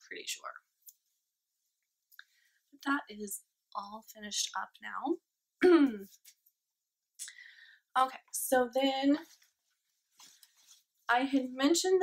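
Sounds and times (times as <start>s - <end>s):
woman's voice: 8.0s - 9.3s, 11.1s - 12.0s
faint rustle of knitting: 9.1s - 12.0s.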